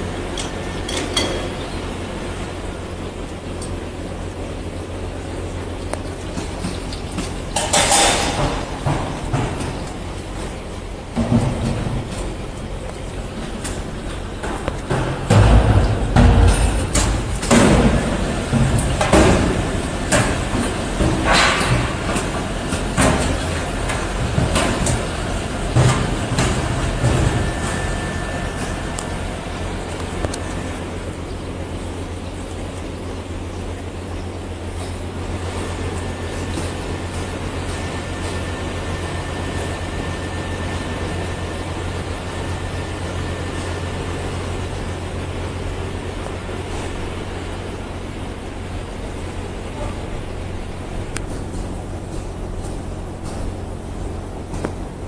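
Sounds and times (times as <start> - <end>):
machinery humming: 0.0 - 55.0.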